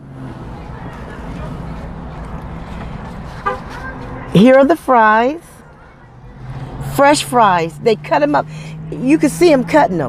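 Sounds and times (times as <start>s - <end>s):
steady vehicle traffic: 0.0s - 10.0s
car horn toot: 3.4s - 4.8s.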